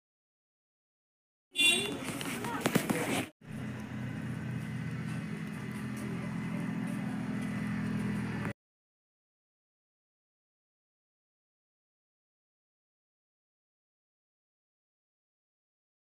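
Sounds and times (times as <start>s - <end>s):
voices: 1.6s - 8.5s
vehicle engine humming: 1.6s - 8.6s.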